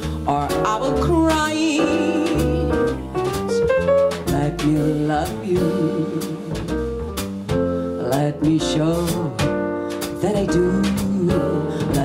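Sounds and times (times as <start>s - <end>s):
drums with cymbal strokes: 0.0s - 12.0s
electric piano: 0.0s - 12.0s
plucked double bass: 0.0s - 12.0s.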